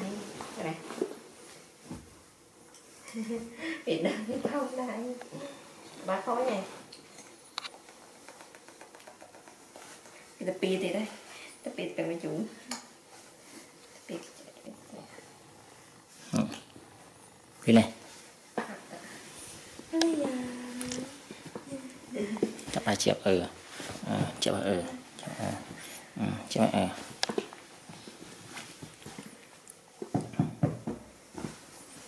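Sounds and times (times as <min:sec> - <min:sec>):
soft taps and rustles on bedding: 0:27.0 - 0:32.0.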